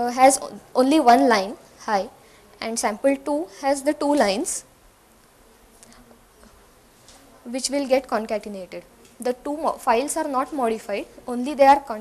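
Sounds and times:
steady room hiss: 0.0s - 12.0s.

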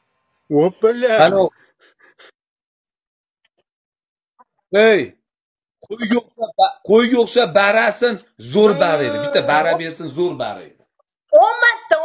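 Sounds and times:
person exclaiming: 8.4s - 10.4s.

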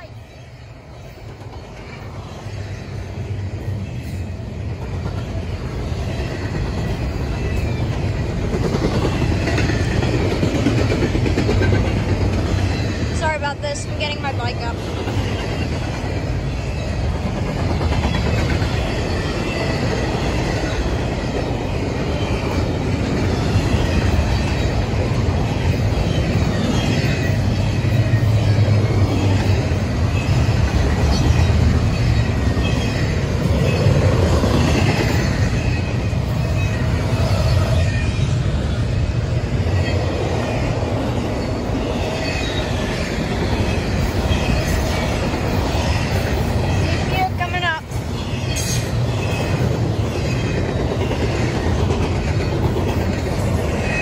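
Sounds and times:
train wheels rumbling on rails: 0.0s - 54.0s.

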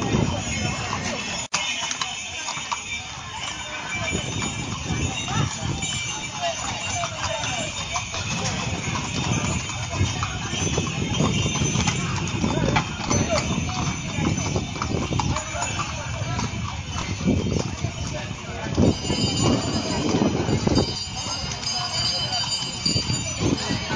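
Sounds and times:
horses hooves clip-clopping on stone: 0.0s - 23.9s
people talking: 0.0s - 23.9s.

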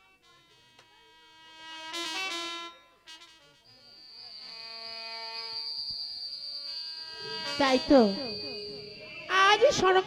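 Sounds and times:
soft held-note music: 0.0s - 10.0s
high-pitched whine: 3.0s - 10.0s.

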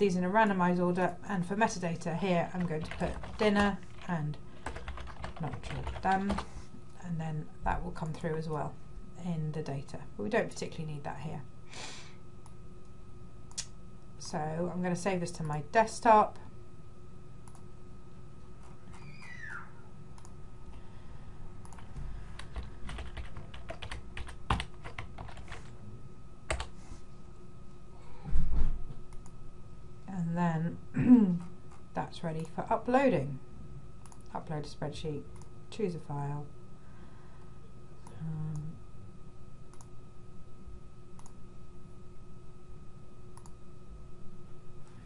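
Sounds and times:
faint electrical hum: 0.0s - 45.0s
typing on computer keyboard: 2.6s - 6.5s, 21.6s - 25.7s, 26.5s - 26.7s
computer mouse clicking: 20.2s - 20.4s, 21.6s - 25.6s, 39.7s - 39.9s, 41.2s - 41.4s, 43.4s - 43.6s.

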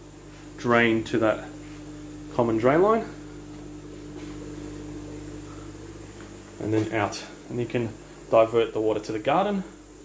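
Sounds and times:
equipment hum with low tones: 0.0s - 10.0s.

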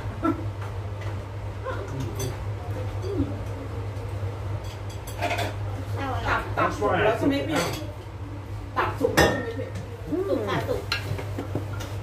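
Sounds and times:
plates and cutlery clattering: 4.6s - 5.6s.

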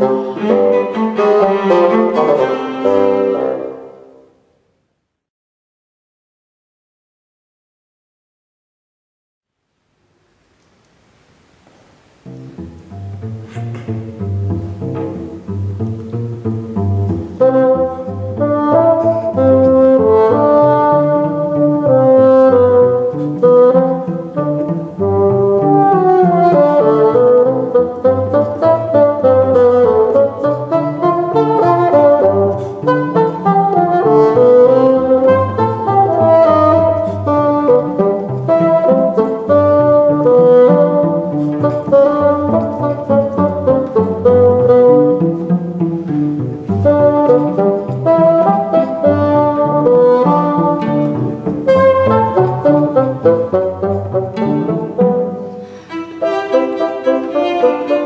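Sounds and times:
bowed cello: 0.0s - 4.3s, 12.2s - 58.0s
bassoon melody: 0.0s - 4.4s, 12.1s - 58.0s.

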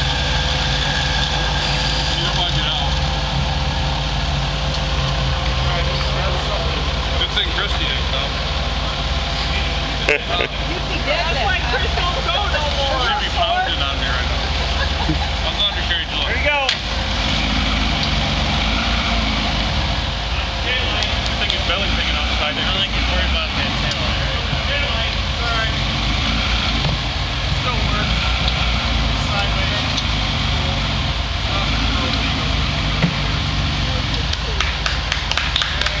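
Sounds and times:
engine running steadily: 0.0s - 36.0s
onlookers talking: 0.0s - 36.0s.

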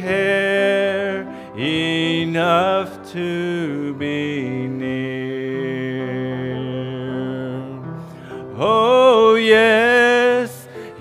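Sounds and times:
man singing slow hymn: 0.0s - 11.0s.

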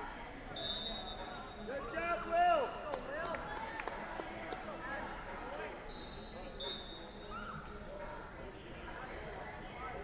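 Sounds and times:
high steady whistle: 0.6s - 1.4s.

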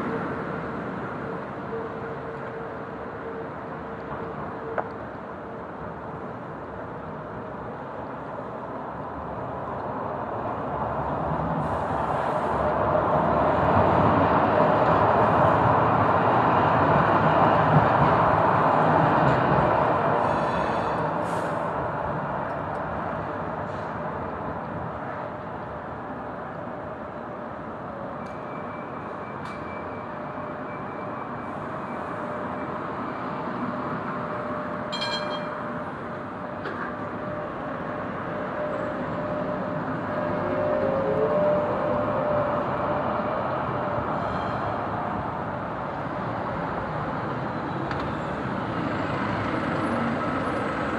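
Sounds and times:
tram passing on street track: 0.0s - 50.9s
brief ringing chime: 34.9s - 35.6s.

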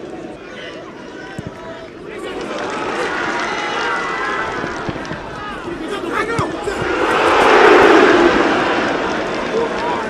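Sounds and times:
whoosh of rushing noise: 6.8s - 9.7s.

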